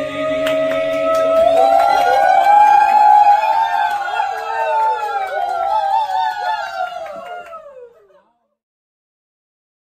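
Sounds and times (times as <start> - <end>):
group singing a long note: 0.0 - 4.8.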